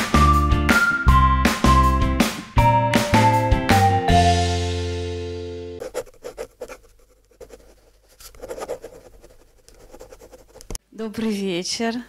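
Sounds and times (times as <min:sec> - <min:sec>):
pencil scratching on paper: 0:05.8 - 0:10.8.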